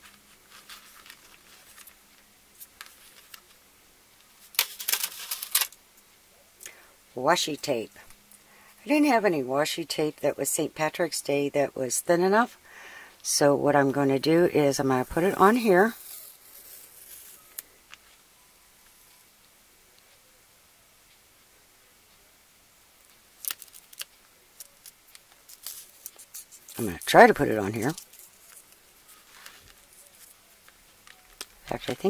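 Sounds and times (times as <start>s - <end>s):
tape rustle: 0.0s - 3.6s, 4.2s - 5.8s, 15.1s - 18.2s, 23.0s - 32.0s.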